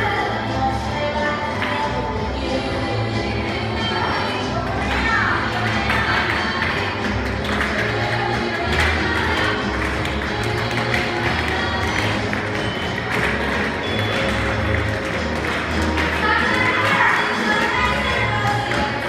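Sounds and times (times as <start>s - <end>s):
dance music with bass line: 0.2s - 19.0s.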